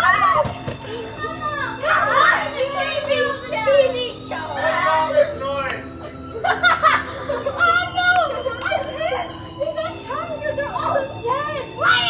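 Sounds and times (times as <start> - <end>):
children calling out: 0.0 - 5.4.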